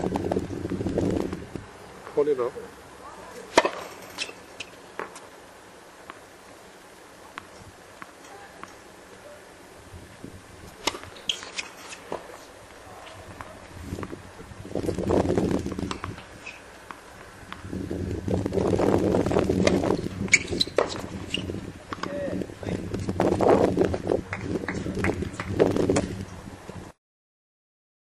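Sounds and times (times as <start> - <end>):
voices: 2.0 - 4.6, 8.2 - 9.6, 11.2 - 13.8, 21.9 - 23.0
tennis ball struck by racket: 3.5 - 5.2, 10.7 - 12.4.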